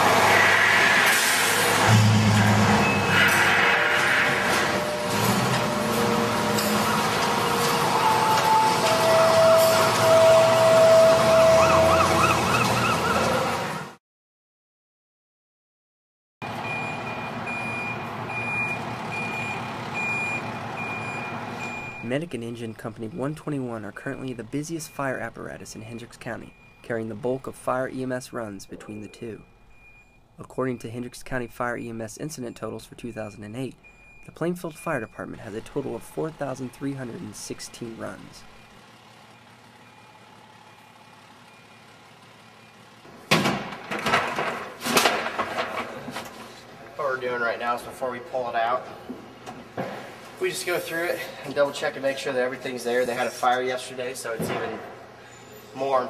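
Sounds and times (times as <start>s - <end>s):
reversing alarm beeping: 1.4s - 13.6s, 16.4s - 43.0s
truck engine running: 16.5s - 30.1s, 32.2s - 45.8s.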